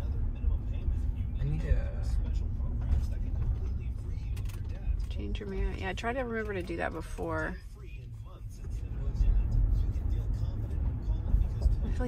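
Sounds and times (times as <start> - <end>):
vehicle engine and tyres rumbling: 0.0 - 12.0.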